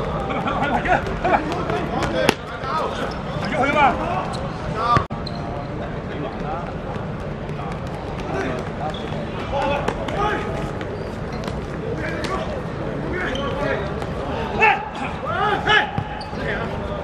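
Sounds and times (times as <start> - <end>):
players shouting: 12.0 - 17.0.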